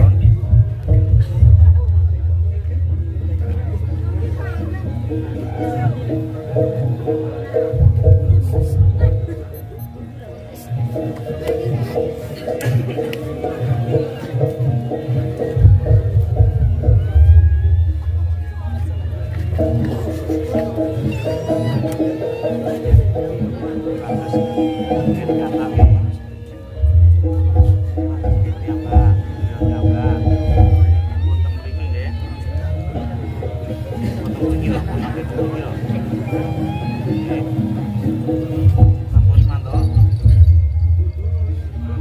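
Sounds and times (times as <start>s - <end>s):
low drum rhythm: 0.0s - 36.2s, 38.0s - 42.0s
gamelan music: 0.0s - 42.0s
people's voices: 0.0s - 42.0s.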